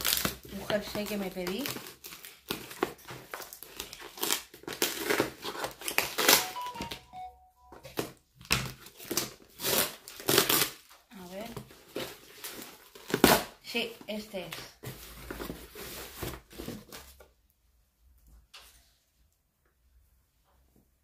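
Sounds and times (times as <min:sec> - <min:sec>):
packaging crinkling and tearing: 0:00.0 - 0:07.0, 0:08.0 - 0:13.6.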